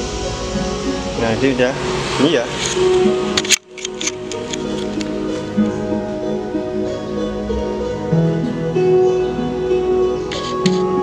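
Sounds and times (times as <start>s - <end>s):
music through a speaker: 0.0s - 11.0s.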